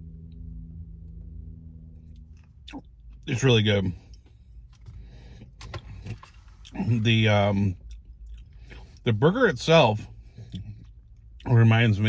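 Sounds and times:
low rumble inside car: 0.0s - 12.0s.

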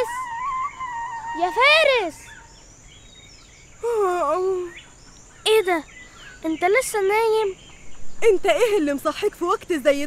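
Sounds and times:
child calling: 0.0s - 2.5s, 3.8s - 4.8s, 5.4s - 7.6s
faint bird chirp: 0.0s - 10.0s.

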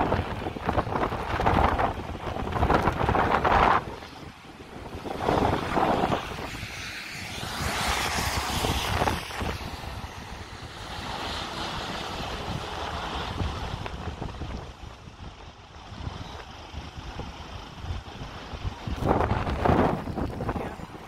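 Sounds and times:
steady rushing background: 0.0s - 21.0s
wind buffeting microphone: 0.0s - 21.0s.

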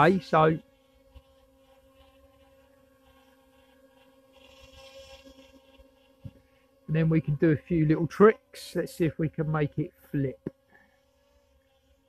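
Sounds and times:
quadcopter propellers humming: 0.0s - 12.0s.

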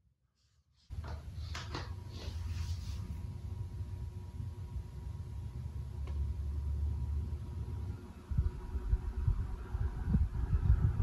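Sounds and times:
airflow buffeting microphone: 0.9s - 11.0s
fan motor hum: 0.9s - 11.0s.

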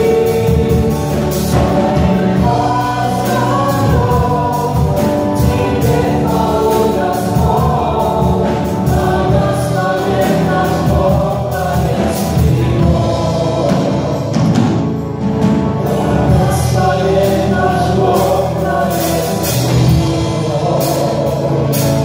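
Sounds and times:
band of guitars and drums: 0.0s - 22.0s
group singing worship song: 0.0s - 22.0s.

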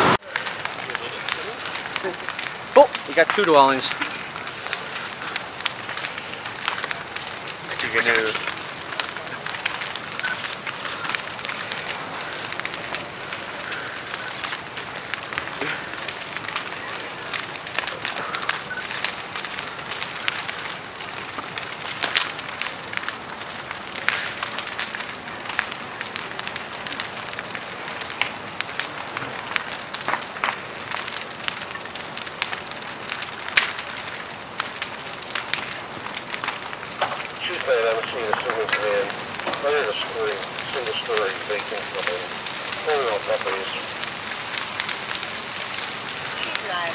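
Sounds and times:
house fire crackling and popping: 0.0s - 46.9s.

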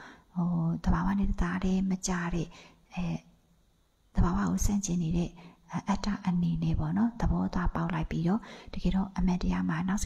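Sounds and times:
woman talking: 0.4s - 3.3s, 4.1s - 10.0s.

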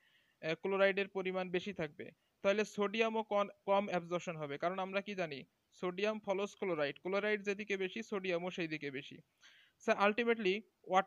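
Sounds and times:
man lecturing: 0.4s - 11.0s.

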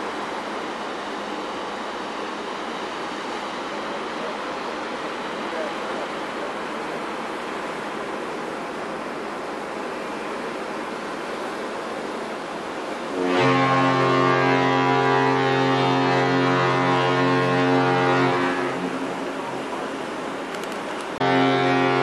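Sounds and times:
ship fog horn blast: 12.7s - 20.0s, 21.2s - 22.0s.

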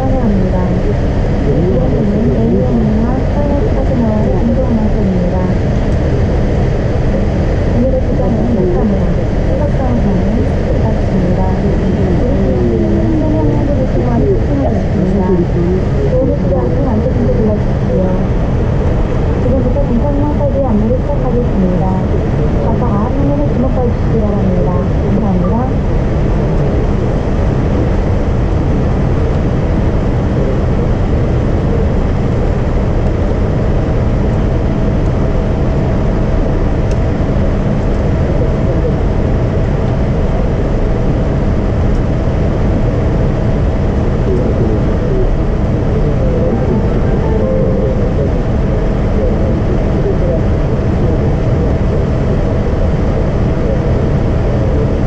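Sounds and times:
airplane cabin low rumble: 0.0s - 55.0s
muffled voices: 0.0s - 55.0s
steady high whine: 0.0s - 55.0s.

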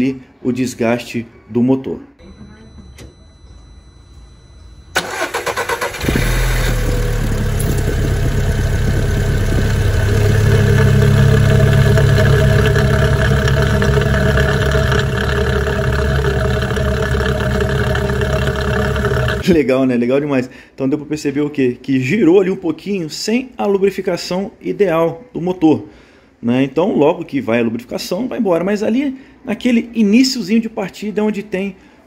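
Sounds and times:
car engine fast idle: 5.0s - 19.4s
starter motor cranking: 5.0s - 19.5s.

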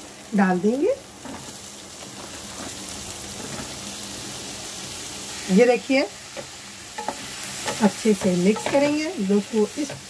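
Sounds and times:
vegetables sizzling in hot oil: 0.0s - 10.0s.

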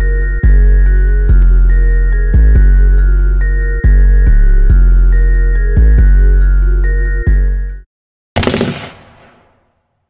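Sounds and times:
rapid gunfire: 8.4s - 9.6s.

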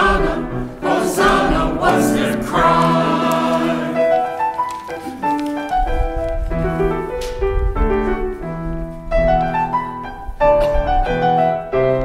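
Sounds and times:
church choir singing: 0.0s - 5.2s
piano playing: 0.0s - 12.0s.

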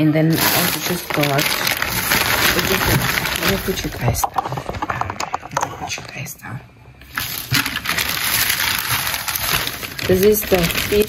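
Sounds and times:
plastic bag rustling: 0.0s - 6.3s, 7.0s - 11.0s.

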